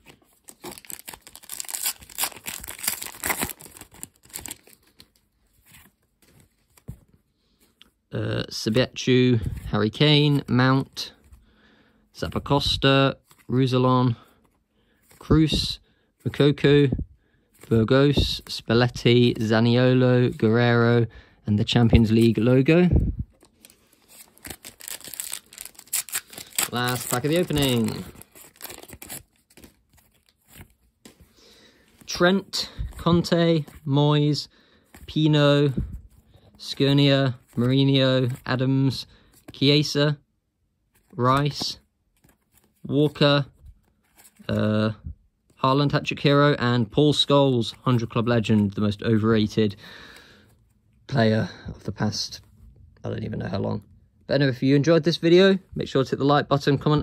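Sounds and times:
cards rustling: 0.0 - 7.9, 21.6 - 40.0, 40.9 - 44.8, 45.4 - 50.8
foil pack tearing and crinkling: 0.5 - 4.8, 23.6 - 30.3.

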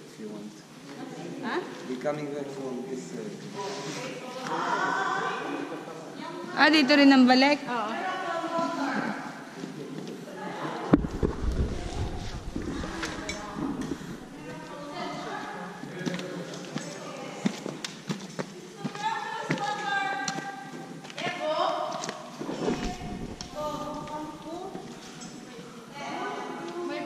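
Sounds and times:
people talking indistinctly: 0.7 - 17.6, 21.2 - 27.0
microphone handling rumble: 10.9 - 14.7, 22.4 - 24.7
footsteps: 10.9 - 14.8, 22.0 - 25.5.

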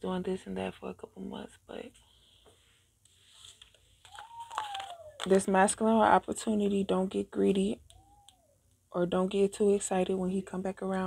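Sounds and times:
playing cards shuffled on a table: 2.5 - 5.4.

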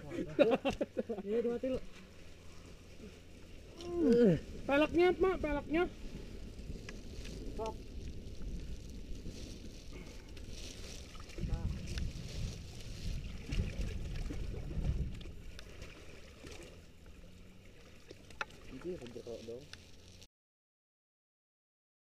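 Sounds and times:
muddy water sloshing and splashing: 5.9 - 20.3.

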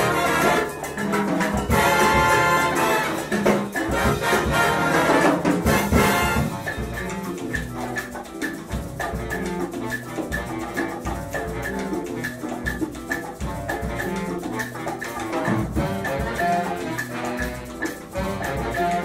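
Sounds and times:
big band brass passage: 0.0 - 8.3, 9.0 - 12.7, 13.4 - 19.0
bass: 0.0 - 19.0
percussion: 0.0 - 19.0.

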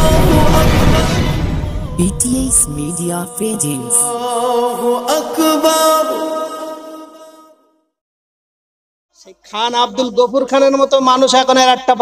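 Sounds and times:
intro jingle with chanted vocal: 0.0 - 7.9.

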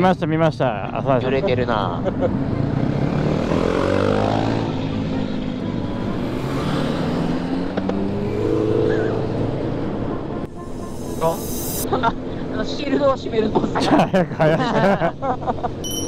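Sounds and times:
motorcycle engine accelerating: 2.5 - 11.8.

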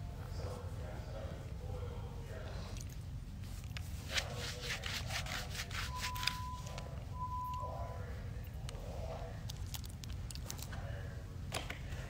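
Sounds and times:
rubbing and rustling strokes: 3.3 - 6.8.

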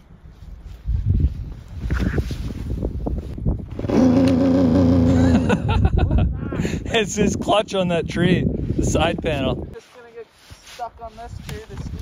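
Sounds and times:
snowmobile engine revving: 3.8 - 5.6.

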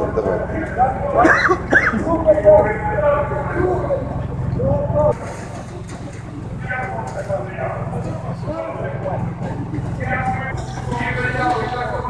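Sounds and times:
people talking: 0.0 - 12.0
steady low rumble: 0.0 - 12.0.

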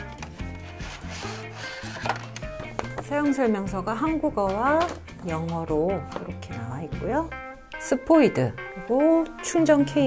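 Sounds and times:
background music: 0.0 - 10.0
cardboard box sliding open: 0.5 - 2.1.

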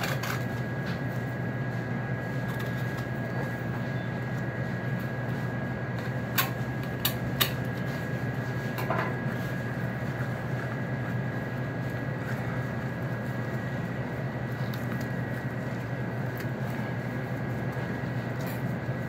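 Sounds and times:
machine hum: 0.0 - 19.0.

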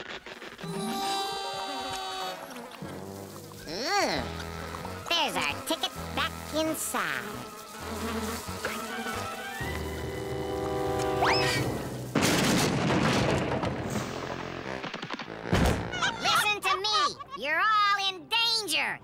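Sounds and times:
cartoon music: 0.6 - 2.5, 3.7 - 7.2, 8.5 - 11.7.

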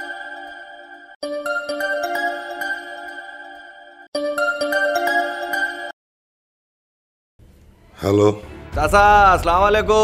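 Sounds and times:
phone melodic ringtone: 0.0 - 6.0.

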